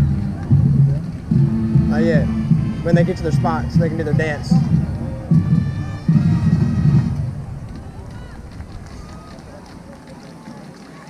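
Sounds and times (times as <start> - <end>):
faint distant music: 0.0 - 11.0
muffled talking: 0.0 - 11.0
stadium background noise: 0.0 - 11.0.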